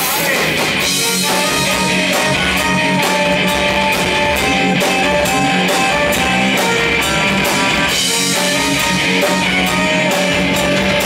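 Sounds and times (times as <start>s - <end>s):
drum kit beat: 0.0s - 11.0s
electric guitars: 0.0s - 11.0s
accordion: 0.8s - 11.0s.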